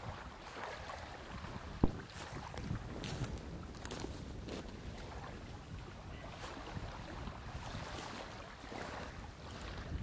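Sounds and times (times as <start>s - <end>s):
wind buffeting microphone: 0.0s - 10.0s
footsteps crackling on dry reeds: 1.8s - 4.7s.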